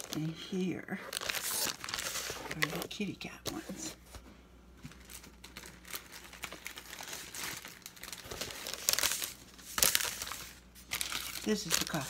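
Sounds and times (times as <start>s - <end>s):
plastic packages crinkling: 0.0s - 4.0s, 4.8s - 12.0s.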